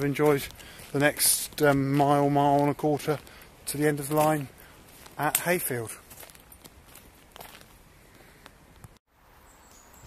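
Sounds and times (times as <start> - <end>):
footsteps on gravel: 0.0 - 8.5
outdoor background noise: 0.0 - 10.0.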